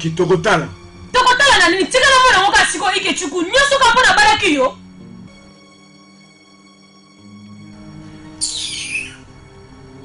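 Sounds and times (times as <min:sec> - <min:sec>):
film soundtrack music with drone: 0:00.0 - 0:10.0.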